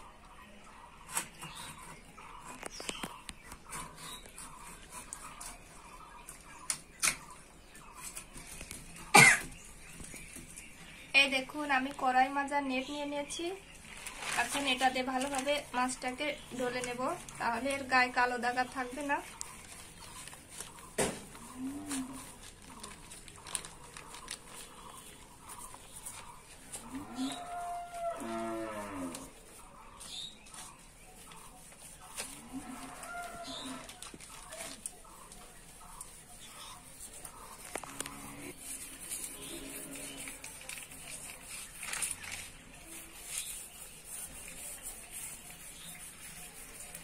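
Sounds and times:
person coughing: 0:09.1 - 0:09.5
cow mooing: 0:26.9 - 0:29.3.

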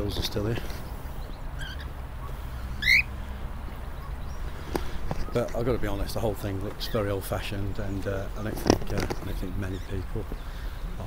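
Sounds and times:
cockatiel calling: 0:01.6 - 0:03.2.

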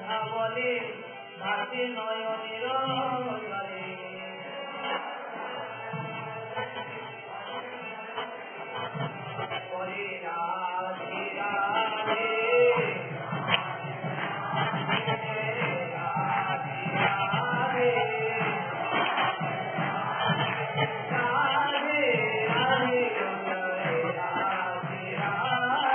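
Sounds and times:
devotional chanting and singing: 0:00.0 - 0:25.9.

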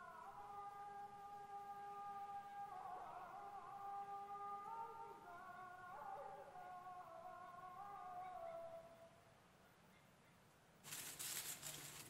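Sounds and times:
dry crackly rustling: 0:10.8 - 0:12.0.

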